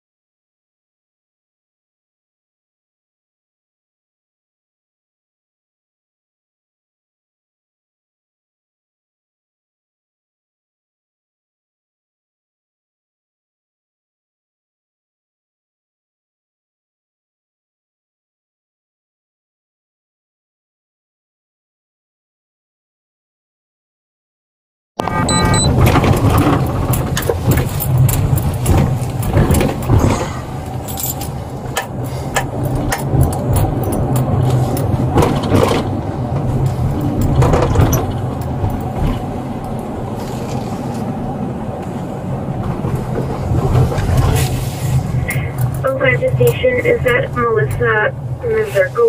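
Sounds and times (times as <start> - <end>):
car engine and road hum: 25.0 - 49.0
person speaking: 45.4 - 49.0.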